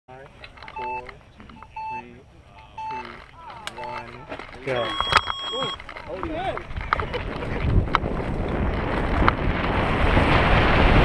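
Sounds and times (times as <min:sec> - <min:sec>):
two-note timer beeps: 0:00.7 - 0:04.1, 0:04.7 - 0:05.8
man calling out: 0:00.7 - 0:05.7.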